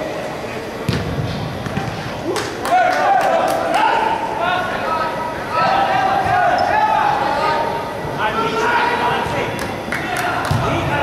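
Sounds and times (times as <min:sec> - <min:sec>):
players shouting: 0:02.2 - 0:11.0.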